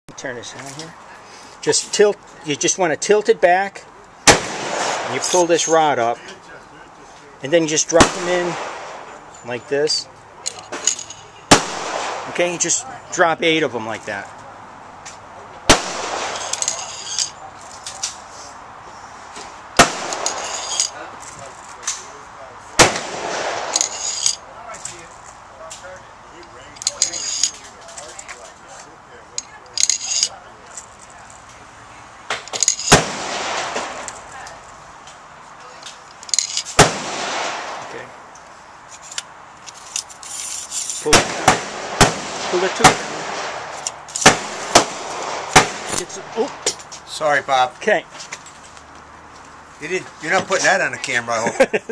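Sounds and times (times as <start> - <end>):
gunshots with echo: 4.3 - 5.4, 8.0 - 9.1, 11.5 - 12.4, 15.7 - 16.5, 19.8 - 20.4, 22.8 - 23.8, 32.9 - 34.0, 36.8 - 37.9, 41.1 - 46.0
metallic clinks: 10.4 - 11.4, 16.4 - 18.2, 20.1 - 21.9, 23.8 - 25.5, 26.6 - 28.5, 29.3 - 31.5, 32.4 - 33.0, 33.6 - 34.8, 36.0 - 36.8.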